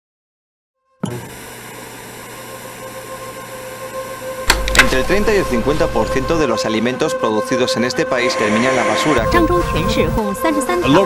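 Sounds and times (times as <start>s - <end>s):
faint steady tones: 9.2s - 10.2s
low hum: 9.2s - 10.2s
steady hissing noise: 9.2s - 10.2s.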